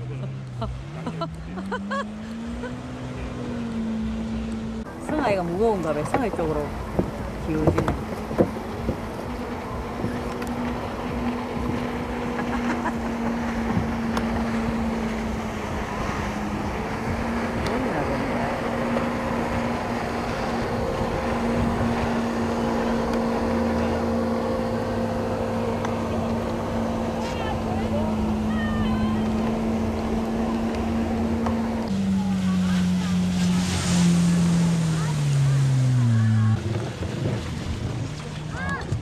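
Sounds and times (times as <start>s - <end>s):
jet ski engine running: 0.0s - 39.0s
rushing water: 0.0s - 39.0s.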